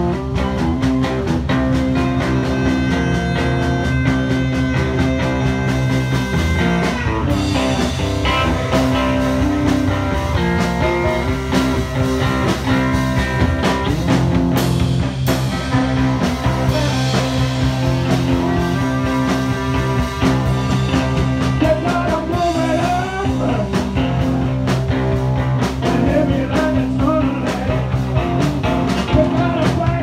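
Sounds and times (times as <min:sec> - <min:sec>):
drum kit with cymbal crashes: 0:00.0 - 0:30.0
rock band playing: 0:00.0 - 0:30.0
saxophone: 0:02.0 - 0:11.6, 0:15.7 - 0:23.4.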